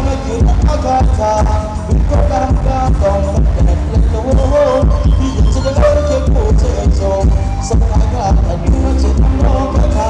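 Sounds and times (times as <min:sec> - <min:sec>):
booming bass beat: 0:00.0 - 0:10.0
live band dance music: 0:00.0 - 0:10.0.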